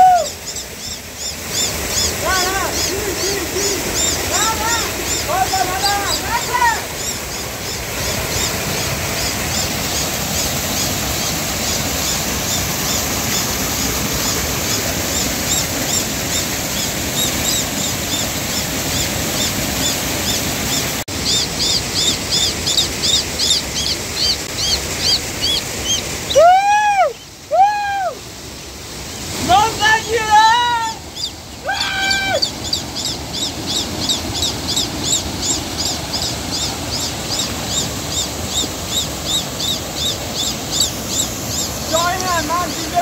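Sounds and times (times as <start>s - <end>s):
lower bird calls: 0.0s - 28.2s, 29.8s - 43.0s
rushing water from waterfall: 0.0s - 43.0s
bird chirping in high peeps: 0.2s - 13.4s, 14.7s - 26.1s, 31.1s - 43.0s.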